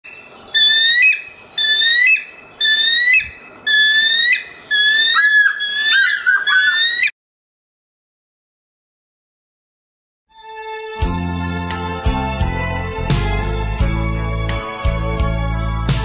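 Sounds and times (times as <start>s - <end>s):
eagle whistled calls: 0.0s - 7.1s.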